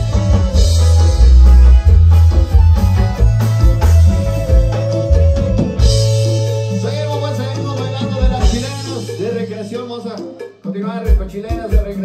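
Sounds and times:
bass line: 0.0s - 11.2s
drum beats: 0.0s - 12.0s
live band playing dance tune: 0.0s - 12.0s.

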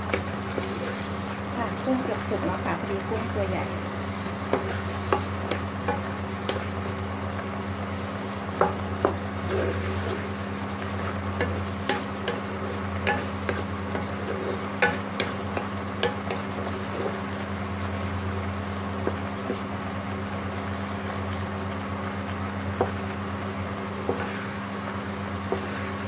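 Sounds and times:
spatula tapping a pan: 0.0s - 0.7s, 4.4s - 6.7s, 8.5s - 9.2s, 11.3s - 17.2s, 19.0s - 19.7s, 22.7s - 23.0s, 24.0s - 24.4s, 25.5s - 25.8s
spatula scraping a wok: 0.0s - 2.3s, 4.2s - 6.8s, 8.0s - 17.4s, 23.9s - 26.0s
sauce sizzling: 0.0s - 26.0s.

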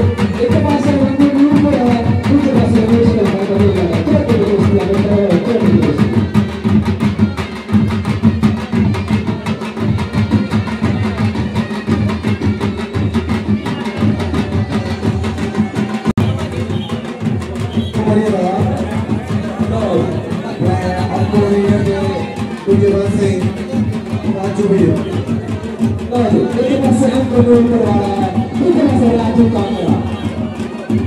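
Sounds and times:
drums beaten fast: 0.0s - 31.0s.

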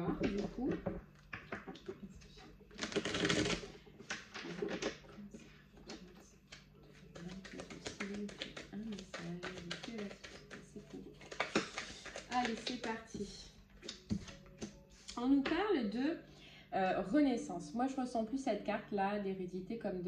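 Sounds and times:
cards being shuffled: 0.1s - 15.2s.

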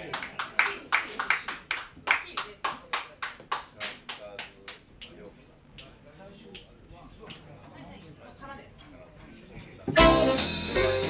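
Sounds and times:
handclaps in steady beat: 0.0s - 5.2s.

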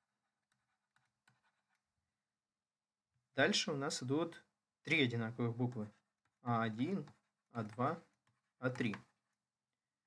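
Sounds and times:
faint handwriting strokes: 0.0s - 2.0s, 5.4s - 9.5s.

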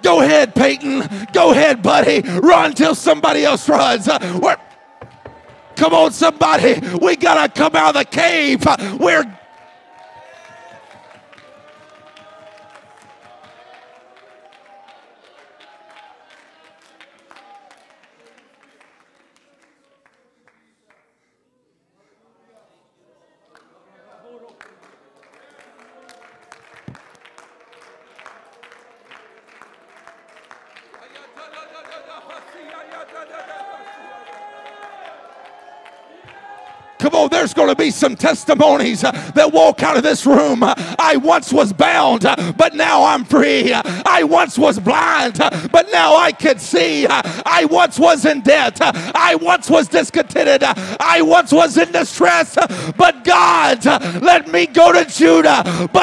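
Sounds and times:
congregation clapping: 0.0s - 21.3s, 23.5s - 56.0s.

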